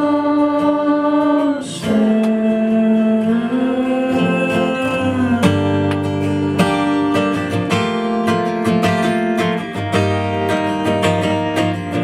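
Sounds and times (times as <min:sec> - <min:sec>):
man singing long notes: 0:00.0 - 0:06.0
acoustic guitar: 0:00.0 - 0:12.0.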